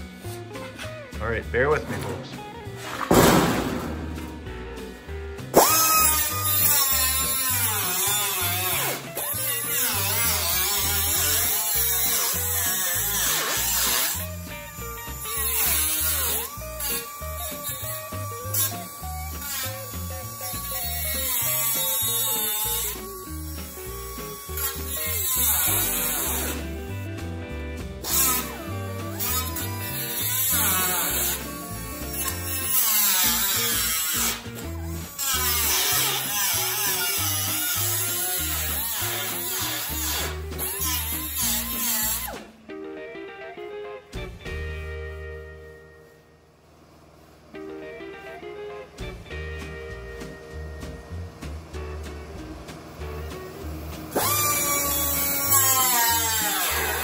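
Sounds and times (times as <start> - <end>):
background music with steady beat: 0.0 - 8.0, 12.7 - 38.5, 40.0 - 46.4, 47.5 - 57.0
air-powered cutoff wheel whining: 4.0 - 27.0, 49.0 - 57.0.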